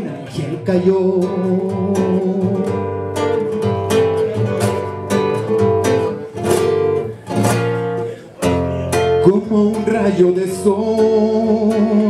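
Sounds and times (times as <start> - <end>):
classical guitar strummed chords: 0.0 - 12.0.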